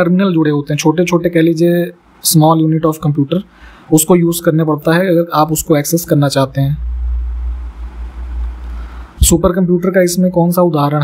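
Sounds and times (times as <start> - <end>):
faint hiss: 0.0 - 11.0
low hum: 5.6 - 9.5.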